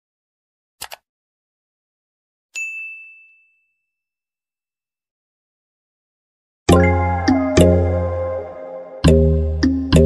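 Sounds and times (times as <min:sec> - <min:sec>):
bell ding notification: 0:02.6 - 0:03.9.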